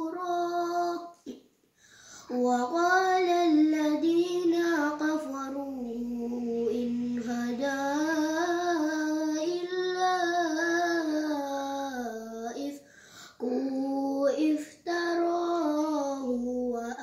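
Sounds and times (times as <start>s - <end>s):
boy chanting melodic recitation: 2.3s - 12.8s.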